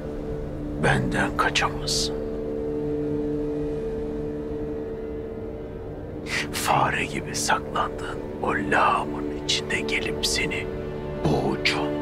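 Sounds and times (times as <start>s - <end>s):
low sustained musical drone: 0.0s - 12.0s.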